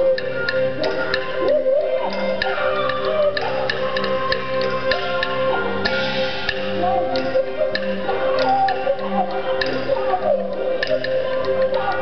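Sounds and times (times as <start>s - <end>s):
wavering melody: 0.0s - 12.0s
wooden clicks keeping a beat: 0.0s - 12.0s.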